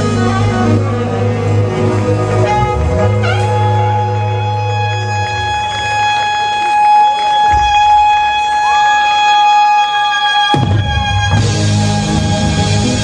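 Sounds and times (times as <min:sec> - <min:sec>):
saxophone holding high note: 0:00.0 - 0:11.8
live band music: 0:00.0 - 0:13.0.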